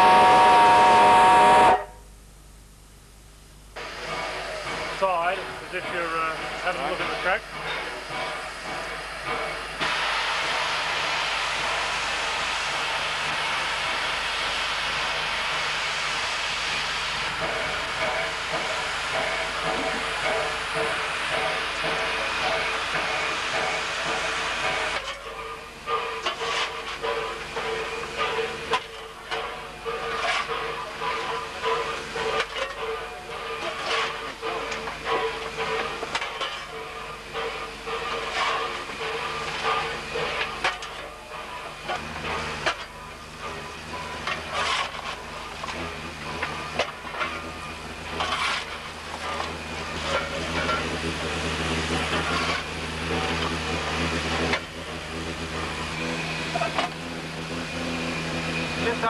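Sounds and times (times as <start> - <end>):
steam hiss and running noise: 0.0 - 2.0, 3.7 - 59.0
coal shovel scraping and clanking: 26.2 - 27.1, 28.2 - 31.4, 32.2 - 32.8, 33.6 - 36.7, 37.4 - 51.3, 51.9 - 54.8.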